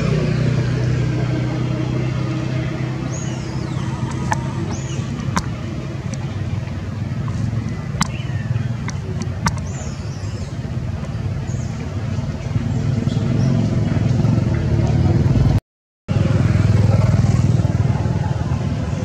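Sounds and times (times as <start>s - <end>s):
steady low rumble: 1.1s - 12.7s.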